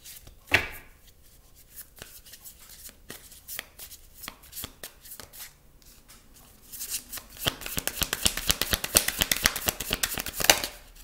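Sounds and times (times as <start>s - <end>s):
cards being shuffled: 6.8s - 10.8s.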